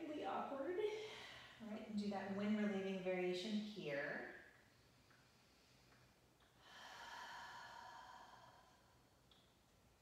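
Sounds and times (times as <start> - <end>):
woman breathing out: 6.6 - 9.1.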